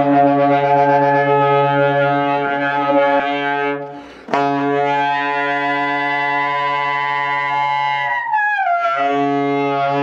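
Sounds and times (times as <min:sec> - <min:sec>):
saxophone holding low note: 0:00.0 - 0:08.2.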